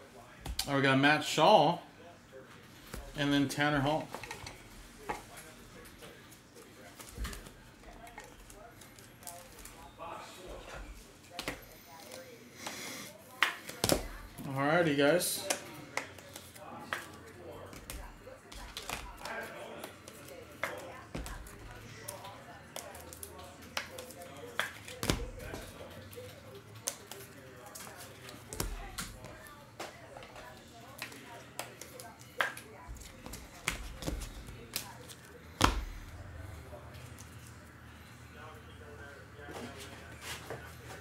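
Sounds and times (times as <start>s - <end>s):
faint background talk: 0.0s - 41.0s.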